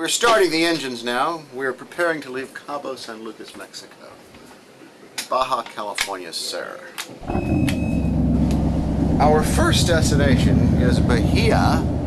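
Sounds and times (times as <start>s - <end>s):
high beep: 7.2s - 8.1s
diesel engines droning: 7.2s - 12.0s.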